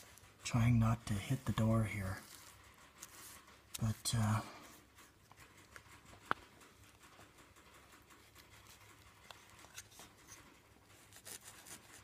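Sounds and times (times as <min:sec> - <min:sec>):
paintbrush scratching on wood: 0:00.0 - 0:12.0.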